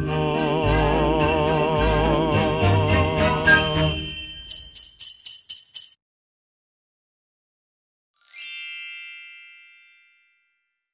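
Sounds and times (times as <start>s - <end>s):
bright chime sound effect: 0.0s - 5.9s, 8.2s - 10.8s.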